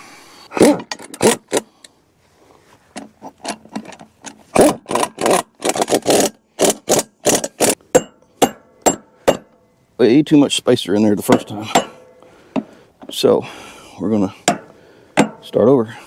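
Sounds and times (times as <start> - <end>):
metal clanks and knocks: 6.9 - 9.6, 11.2 - 13.2, 14.4 - 15.6.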